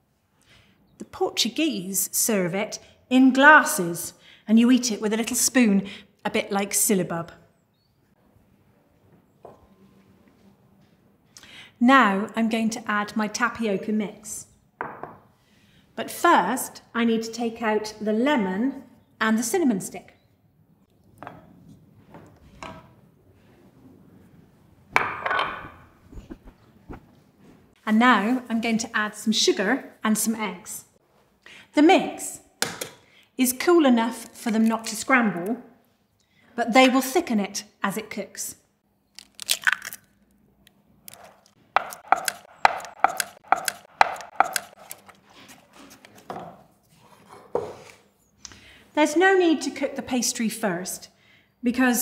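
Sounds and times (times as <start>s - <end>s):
wooden spoon scraping saucepan: 25.4s - 27.2s
wooden spoon knocking and scraping pan: 41.8s - 44.9s.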